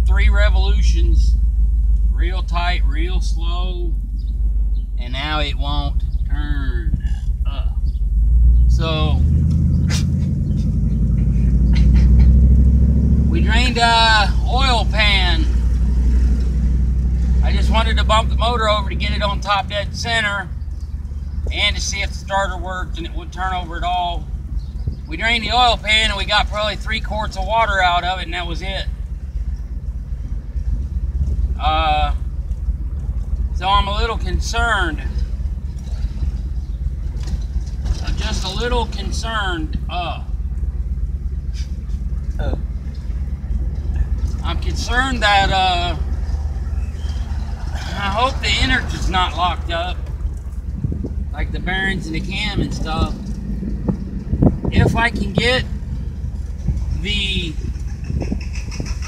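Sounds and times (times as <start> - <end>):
voices: 0.0 - 1.4, 2.1 - 4.1, 4.9 - 7.9, 8.7 - 12.5, 13.2 - 16.2, 17.2 - 20.6, 21.3 - 29.2, 31.2 - 32.4, 33.4 - 59.0
car engine and road rumble: 0.0 - 59.0.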